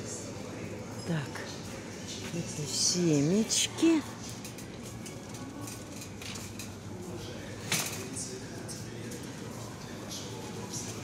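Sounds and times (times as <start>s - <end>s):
supermarket background noise: 0.0s - 11.0s
faint distant voices: 3.6s - 11.0s.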